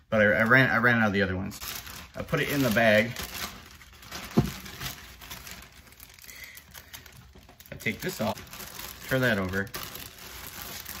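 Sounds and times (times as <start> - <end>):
plastic bag crinkling: 0.2 - 11.0.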